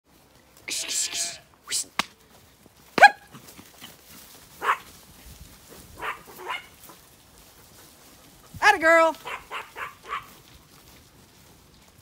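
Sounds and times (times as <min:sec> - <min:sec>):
dog barking: 0:03.0 - 0:03.4, 0:04.6 - 0:04.9, 0:06.0 - 0:06.8, 0:09.2 - 0:10.4.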